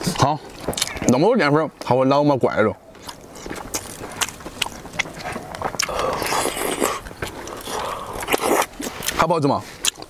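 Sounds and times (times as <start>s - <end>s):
person chewing and slurping: 0.0s - 1.1s, 2.9s - 10.0s.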